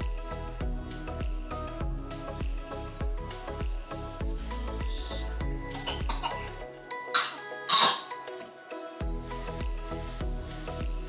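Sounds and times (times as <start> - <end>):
soft background music: 0.0 - 11.0
small child coughing: 5.9 - 6.5, 7.2 - 8.1.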